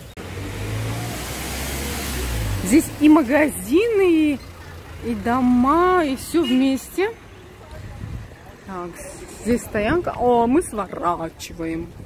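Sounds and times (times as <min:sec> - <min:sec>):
street noise hiss: 0:00.0 - 0:12.0.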